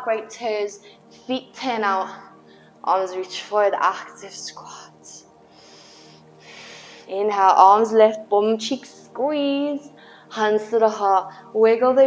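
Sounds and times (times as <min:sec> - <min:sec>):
soft music of held tones: 0:00.0 - 0:12.0
person breathing: 0:00.8 - 0:01.1, 0:02.4 - 0:02.8, 0:05.5 - 0:07.1, 0:10.0 - 0:10.3.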